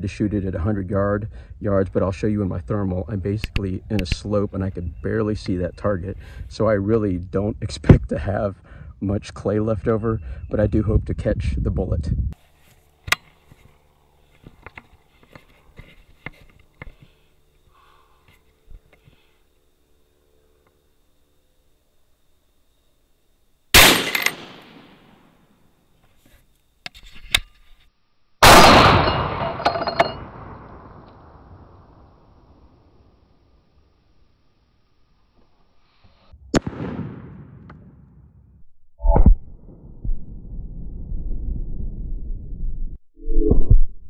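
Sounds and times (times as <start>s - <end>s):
rifle handling clicks: 23.8s - 24.8s
rifle shots: 23.8s - 25.2s, 28.4s - 31.0s, 36.6s - 38.0s.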